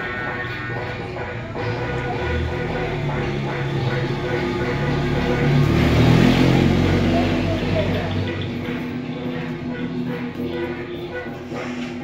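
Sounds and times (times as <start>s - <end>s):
recorded music: 0.0s - 12.0s
vehicle engine rumble: 0.8s - 12.0s.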